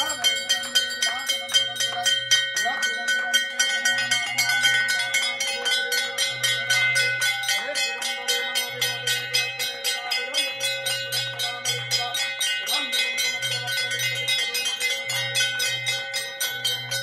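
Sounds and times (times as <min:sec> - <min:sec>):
brass bells struck rapidly: 0:00.0 - 0:17.0.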